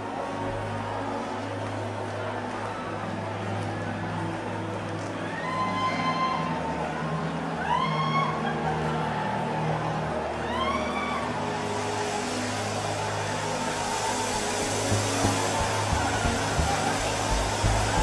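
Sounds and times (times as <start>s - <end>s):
soft keyboard chords: 12.5s - 18.0s.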